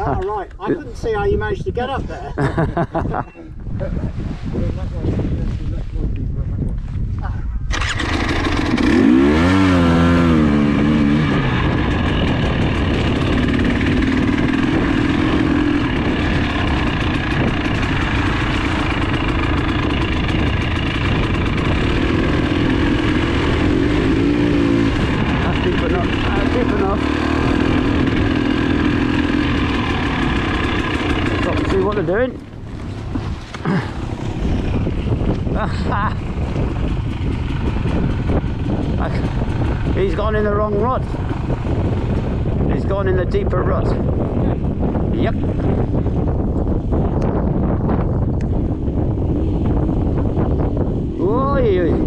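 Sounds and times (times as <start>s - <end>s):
motorcycle engine revving: 7.7s - 52.0s.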